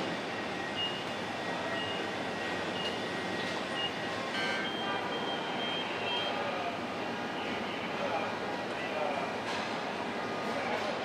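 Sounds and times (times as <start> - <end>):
machinery and factory floor noise: 0.0 - 11.0.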